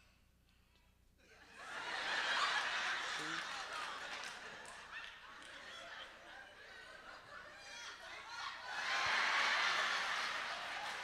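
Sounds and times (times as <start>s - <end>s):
audience laughing: 1.6s - 11.0s.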